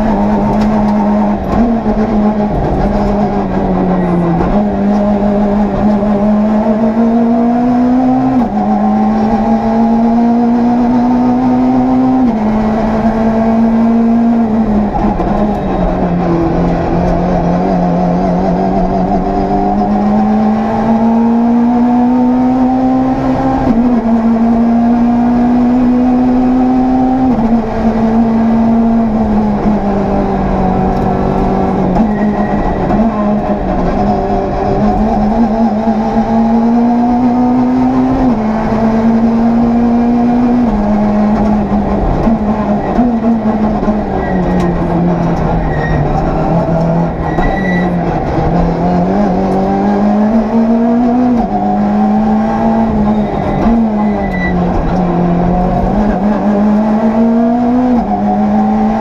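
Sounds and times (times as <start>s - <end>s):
rally car engine at high revs: 0.0s - 59.0s.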